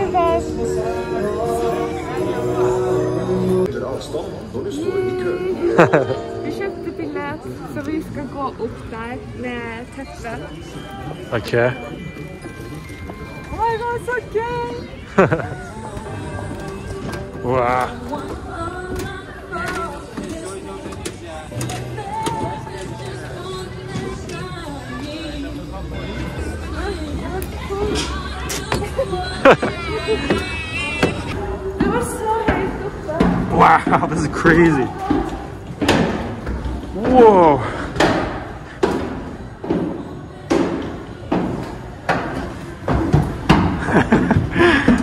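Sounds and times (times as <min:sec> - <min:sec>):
people talking: 0:00.0 - 0:12.5.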